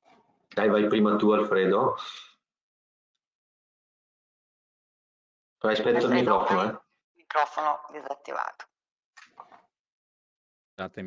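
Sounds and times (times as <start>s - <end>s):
man speaking: 0.5s - 2.3s, 5.6s - 6.8s, 10.8s - 11.0s
faint voice: 0.6s - 2.2s, 5.6s - 6.8s, 10.8s - 11.0s.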